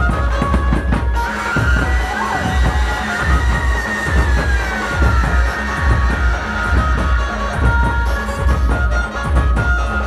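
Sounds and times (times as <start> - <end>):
drum strokes: 0.0 - 10.0.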